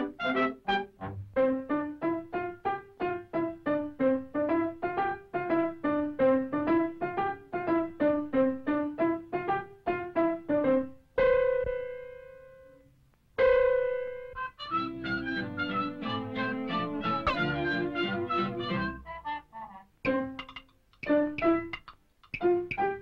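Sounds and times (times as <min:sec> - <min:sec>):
piano notes: 0:00.0 - 0:12.8, 0:13.4 - 0:23.0.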